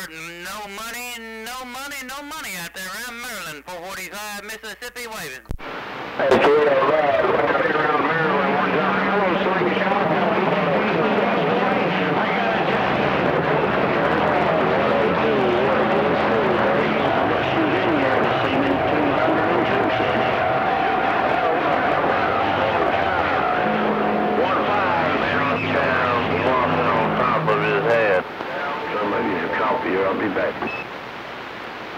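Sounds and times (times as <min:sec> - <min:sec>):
garbled overlapping radio voices: 0:00.0 - 0:31.7
radio static: 0:00.0 - 0:31.9.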